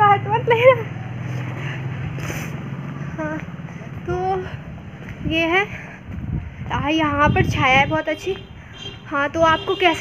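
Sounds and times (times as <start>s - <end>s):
vehicle engine running: 0.0s - 6.9s.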